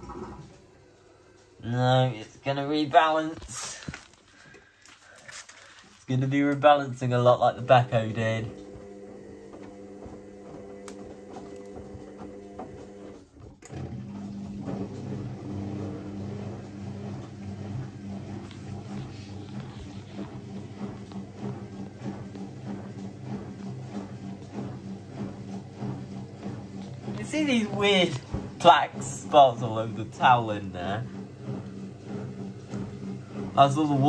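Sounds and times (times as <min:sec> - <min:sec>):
washing machine drum humming: 0:00.0 - 0:05.4, 0:06.1 - 0:34.0.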